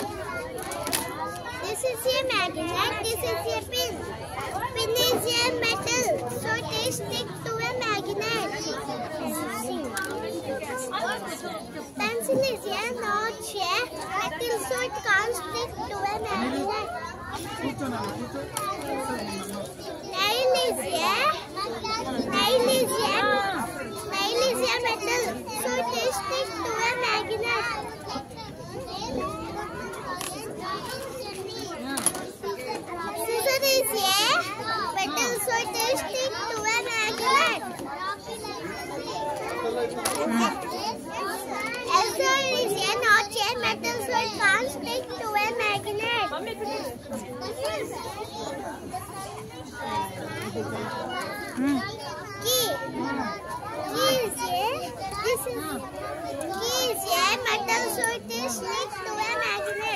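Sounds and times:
children talking: 0.0 - 59.9.

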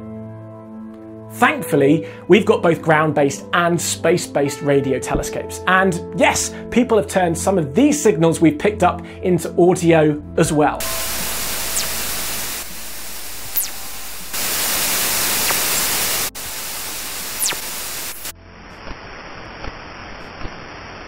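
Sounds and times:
static hiss: 10.8 - 21.0
falling whistles: 11.3 - 12.3.

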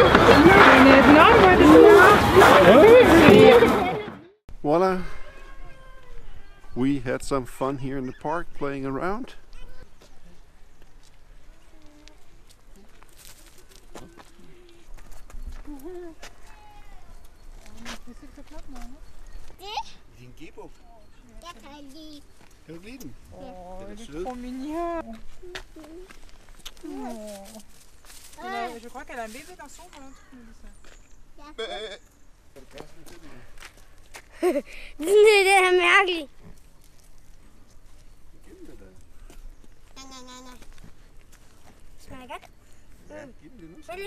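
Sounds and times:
voices at low level: 0.0 - 13.1
goat bleating: 31.6 - 32.0, 39.9 - 40.8.

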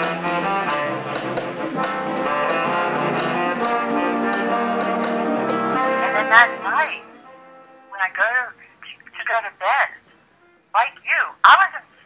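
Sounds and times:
high-pitched telephone-like voice: 7.9 - 10.0, 10.8 - 11.9.

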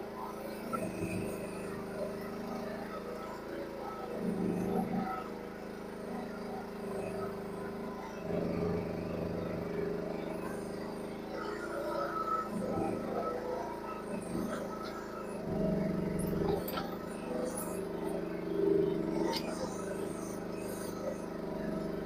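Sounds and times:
excavator engine running: 0.0 - 22.0.

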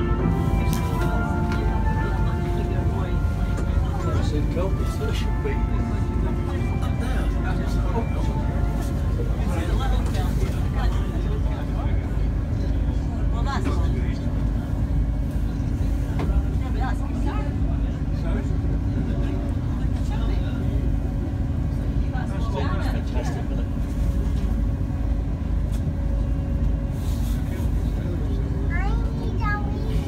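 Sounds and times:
boat engine rumbling: 0.0 - 30.0.

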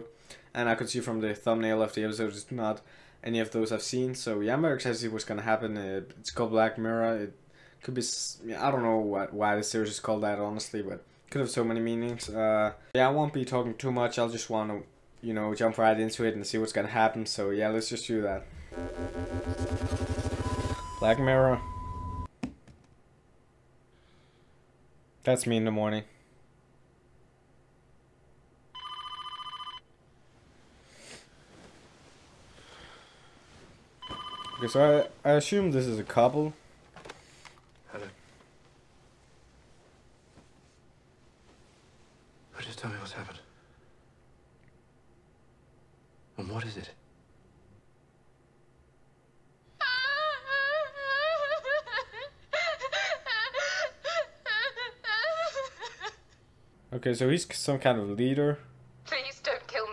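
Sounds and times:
telephone ringing: 18.7 - 22.3, 28.8 - 29.9, 34.0 - 35.1
young woman sobbing and wailing: 49.8 - 56.4.

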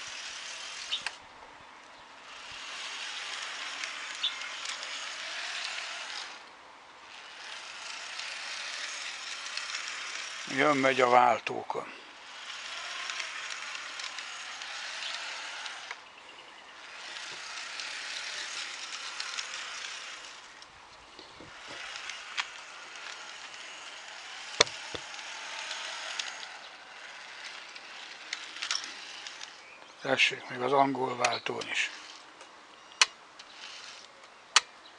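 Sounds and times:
model locomotive motor whirring: 0.0 - 34.9
wheels clicking over rail joints: 0.0 - 34.9
sharp click: 24.6 - 25.1, 32.4 - 34.8.

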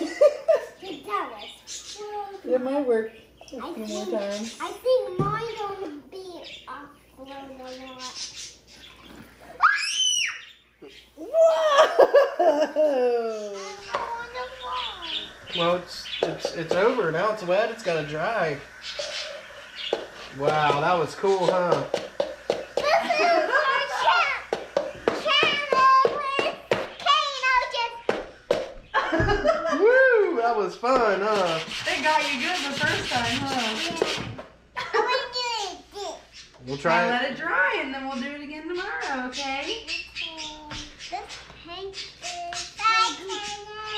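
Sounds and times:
children vocalising and laughing: 0.0 - 2.5, 3.5 - 15.8, 22.4 - 30.4, 33.7 - 36.6, 39.6 - 43.9
child's high squeal: 9.5 - 10.6.

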